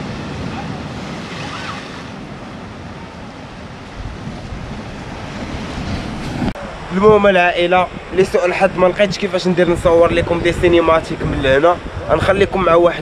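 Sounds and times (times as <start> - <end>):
waves breaking: 0.0 - 13.0
wind on microphone: 0.0 - 13.0.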